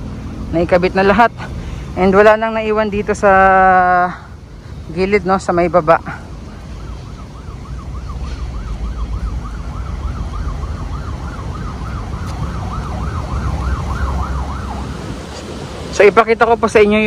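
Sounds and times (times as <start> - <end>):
siren yelping: 5.0 - 16.8.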